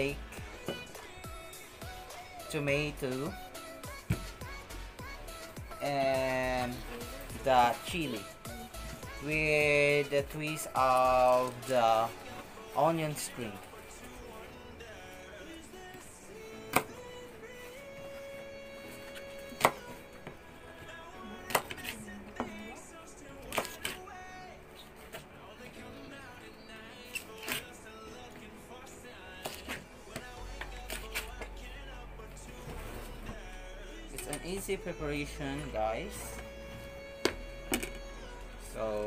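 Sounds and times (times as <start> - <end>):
background music: 0.0 - 39.0.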